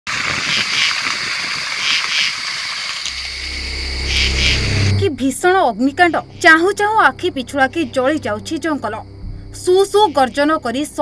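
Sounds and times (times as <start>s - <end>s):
night creatures chirring: 1.8s - 10.4s
deep low drone: 3.0s - 9.8s.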